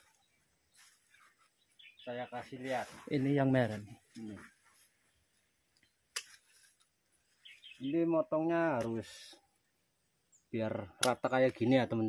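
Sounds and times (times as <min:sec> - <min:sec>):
scissors snipping a stem: 0:06.1 - 0:06.8.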